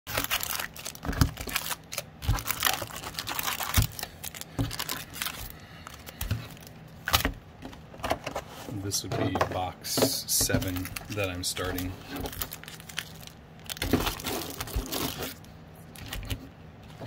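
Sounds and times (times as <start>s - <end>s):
foil packs crinkling: 0.1s - 7.4s, 10.4s - 16.4s.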